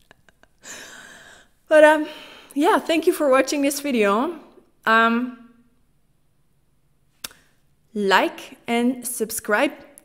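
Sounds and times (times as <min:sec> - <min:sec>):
mouth click: 0:07.2 - 0:07.4.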